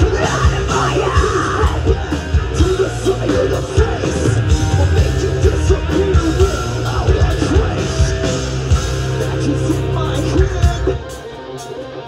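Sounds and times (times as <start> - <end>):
vocalist screaming: 0.0 - 4.3
distorted electric guitar: 0.0 - 12.0
driving drums: 0.0 - 12.0.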